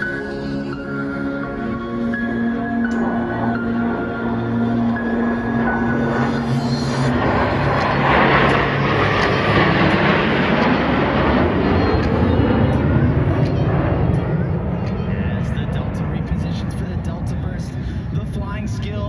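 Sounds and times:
jets flying past: 0.0 - 18.8.

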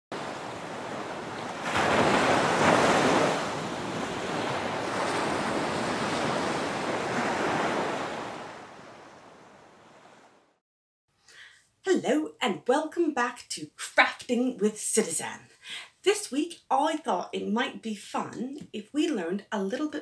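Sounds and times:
sea waves washing on shore: 0.1 - 10.4.

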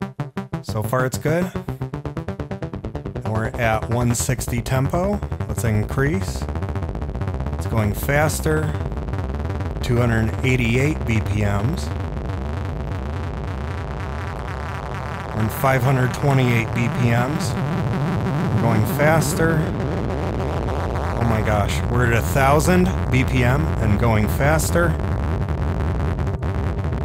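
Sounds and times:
fast sequenced synthesizer notes: 0.0 - 27.0
steady synth bass: 0.0 - 27.0.

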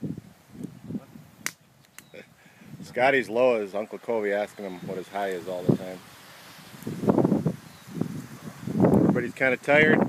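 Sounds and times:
breeze: 0.0 - 10.0.

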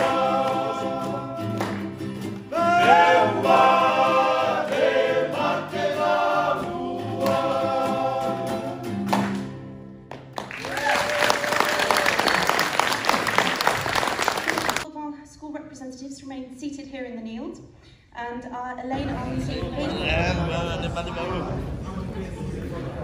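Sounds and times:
group singing in harmony: 0.0 - 9.3
acoustic guitar and ukulele: 0.0 - 10.2
audience applause: 10.1 - 14.8.

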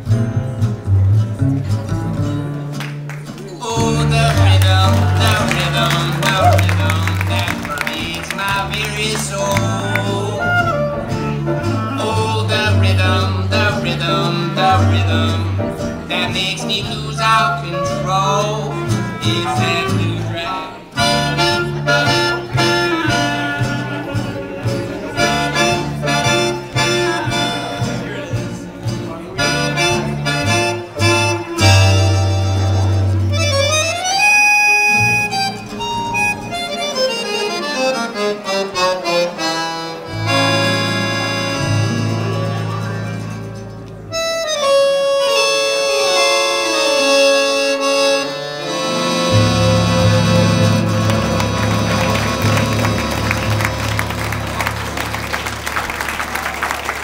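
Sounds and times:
guitar: 0.0 - 57.0
piano: 0.0 - 57.0
upright bass: 0.0 - 57.0
accordion: 3.6 - 57.0
clarinet: 10.2 - 13.1, 17.5 - 28.3, 29.4 - 55.4.

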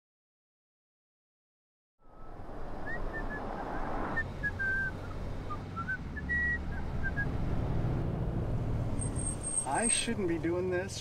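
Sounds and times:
car driving rumble: 2.2 - 11.0
person whistling a tune: 4.4 - 7.3.

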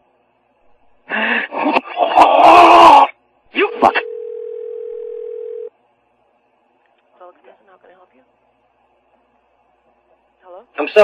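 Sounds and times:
telephone dial tone: 4.0 - 5.7
telephone line hiss: 4.0 - 5.7.

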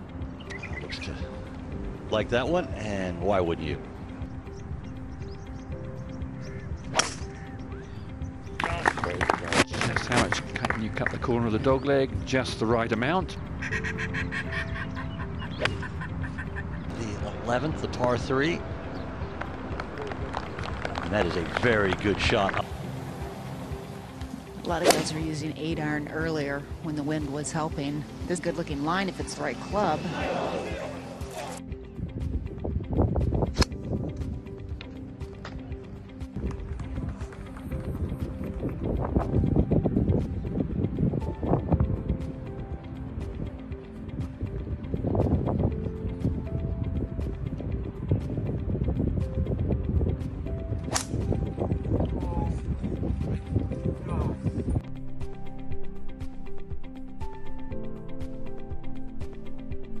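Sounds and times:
faint background music: 0.0 - 60.0
golf club striking ball: 6.9 - 7.4, 24.8 - 25.2, 50.9 - 51.2
voices: 24.6 - 31.6.

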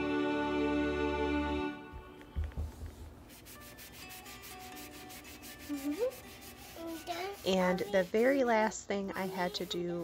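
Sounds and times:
foam eraser scrubbing: 3.2 - 10.0.

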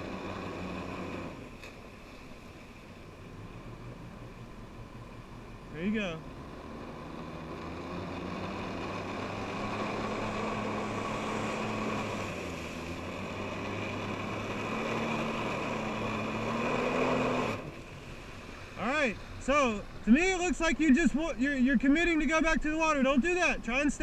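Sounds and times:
watercraft engine at high throttle: 0.0 - 24.0
water spraying from jets: 8.5 - 16.3.

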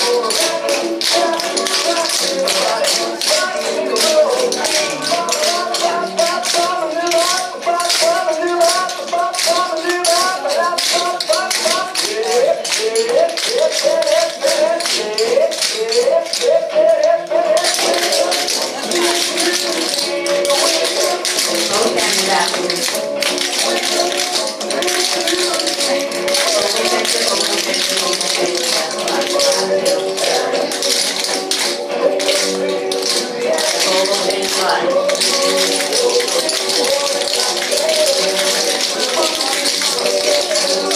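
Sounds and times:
tap shoes clicking on wooden floor: 0.0 - 16.4, 17.6 - 40.9
swing music: 0.0 - 40.9.

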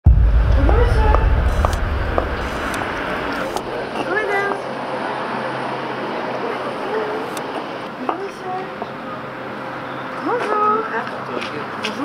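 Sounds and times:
low rumble: 0.0 - 3.7
traffic hum: 0.0 - 11.2.

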